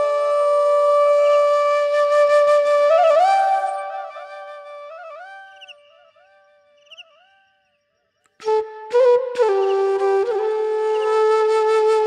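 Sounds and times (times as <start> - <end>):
bamboo flute melody: 0.0 - 6.5, 8.4 - 12.0.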